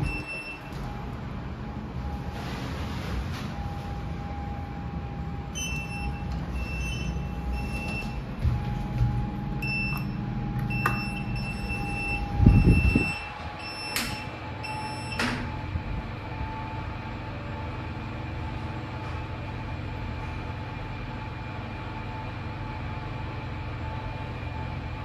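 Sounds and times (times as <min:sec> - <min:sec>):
lift warning beeps: 0:00.0 - 0:16.9
steady hum: 0:00.0 - 0:25.0
lift doors shutting with thump: 0:12.5 - 0:15.7.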